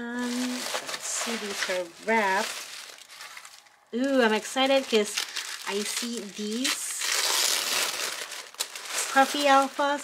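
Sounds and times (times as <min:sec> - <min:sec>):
tissue paper crinkling: 0:00.1 - 0:10.0.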